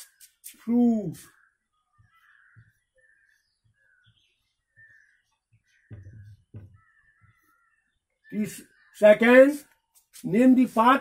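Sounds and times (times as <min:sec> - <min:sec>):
faint crow cawing: 0:01.3 - 0:08.1
dull knocks: 0:05.8 - 0:07.4.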